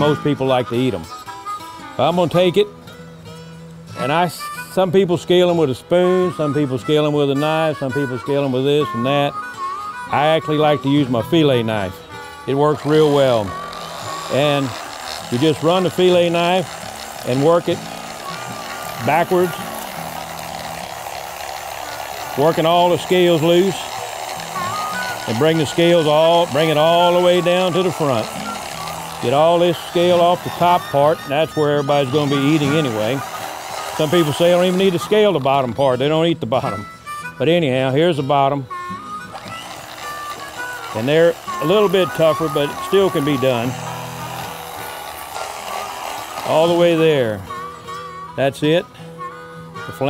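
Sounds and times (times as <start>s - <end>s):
electric fillet knife motor: 0.0s - 2.7s, 3.4s - 50.0s
faint background music: 0.0s - 50.0s
blade scraping fish scales: 12.5s - 35.4s, 39.3s - 47.4s.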